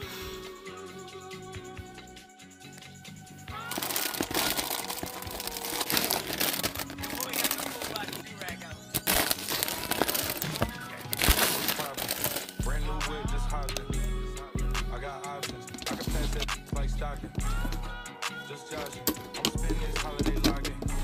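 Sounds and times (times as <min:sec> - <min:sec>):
music: 0:00.0 - 0:21.0
foil chip bags crinkling: 0:03.5 - 0:12.9, 0:15.4 - 0:17.9.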